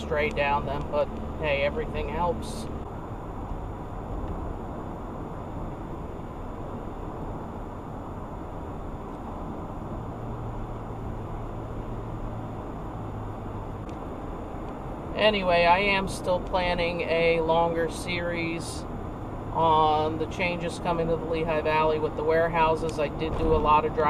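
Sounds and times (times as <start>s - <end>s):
car engine low drone: 0.0s - 24.0s
tyres on asphalt: 0.0s - 24.0s.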